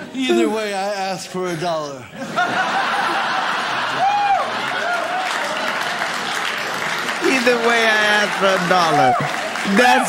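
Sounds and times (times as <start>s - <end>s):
audience laughing: 1.7s - 6.3s
audience applauding: 2.7s - 10.0s.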